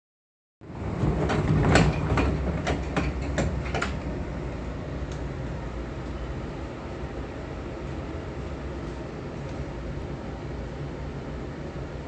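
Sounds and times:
train carriage low rumble: 0.6 - 12.0
sliding train doors closing: 0.7 - 6.9
sharp clicks and knocks: 1.2 - 4.1.

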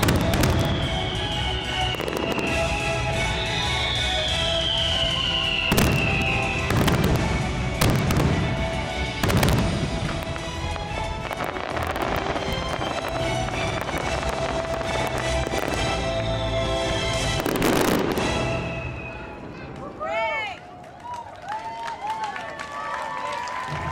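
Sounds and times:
orchestral music: 0.0 - 20.0
fireworks bangs: 0.0 - 20.8.

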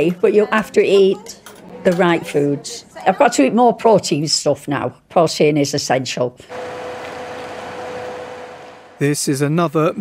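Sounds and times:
machine humming: 6.5 - 9.2.

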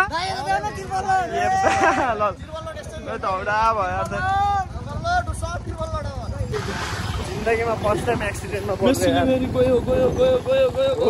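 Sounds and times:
man talking: 7.2 - 11.0.

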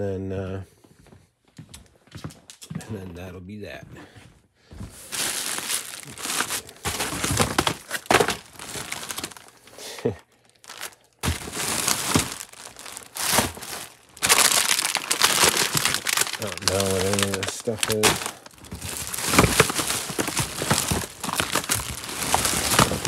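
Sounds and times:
plastic bags crinkling: 5.0 - 23.0.

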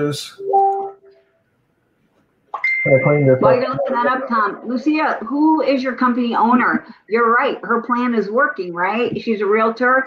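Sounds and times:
thin steady high tone: 2.6 - 5.4
person speaking: 2.9 - 6.8.

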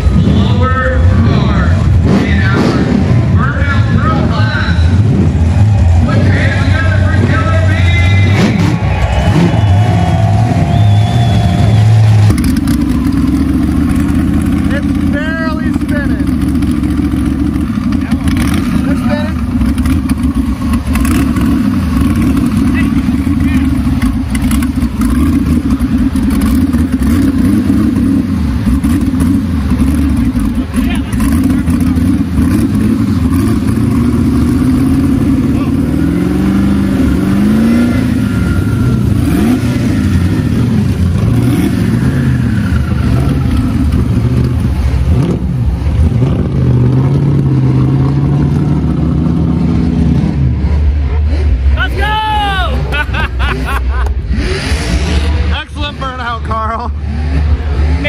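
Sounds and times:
engine running and revving: 0.0 - 58.0.

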